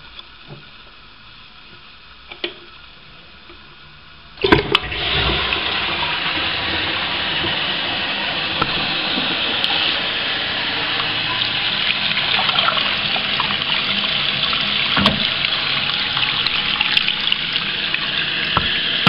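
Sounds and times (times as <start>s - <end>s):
toilet flushing: 4.4s - 19.0s.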